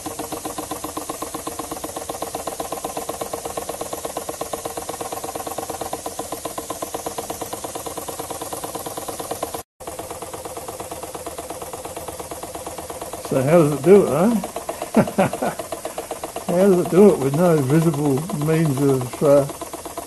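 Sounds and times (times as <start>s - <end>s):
model engine exhaust pulses: 0.0s - 20.0s.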